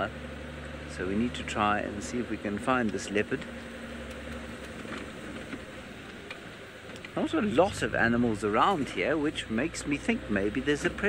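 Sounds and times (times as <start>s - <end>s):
vehicle engine and road noise: 0.0s - 11.0s
faint vehicle clicks: 0.8s - 11.0s.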